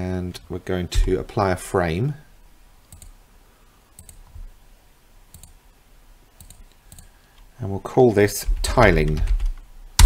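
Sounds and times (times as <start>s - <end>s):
computer mouse clicks: 2.9s - 3.2s, 4.0s - 4.5s, 5.3s - 5.6s, 6.4s - 7.5s.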